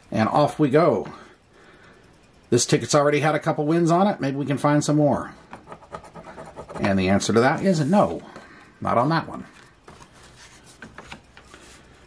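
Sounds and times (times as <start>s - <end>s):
paper rubbing on table: 5.6s - 8.2s, 10.2s - 11.8s.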